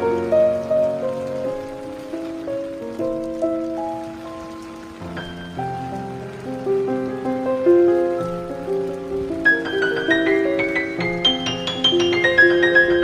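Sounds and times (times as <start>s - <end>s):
rain falling: 0.0s - 13.0s
solo piano chords: 0.0s - 13.0s.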